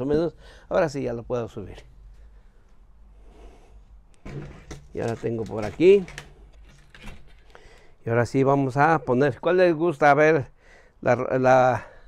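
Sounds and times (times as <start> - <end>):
clicks handling flowerpot and soil: 4.6 - 7.9.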